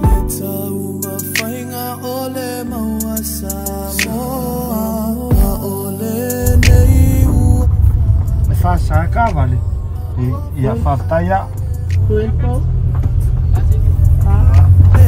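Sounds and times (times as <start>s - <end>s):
van road and engine rumble: 6.5s - 15.0s
people talking: 8.4s - 12.7s, 13.4s - 15.0s.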